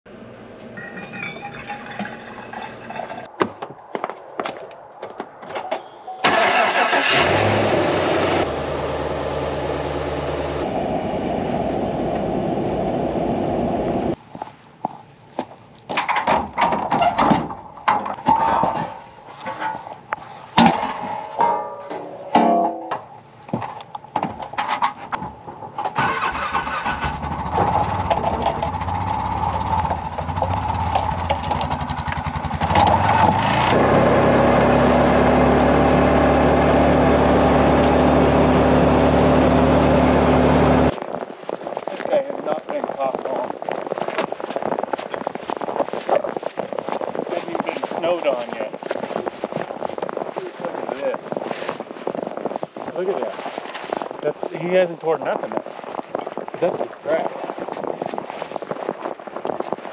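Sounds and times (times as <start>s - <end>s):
vehicle engine running: 7.2s - 14.1s, 27.2s - 41.0s
irregular knocks and clatter: 15.4s - 26.0s, 27.2s - 33.4s.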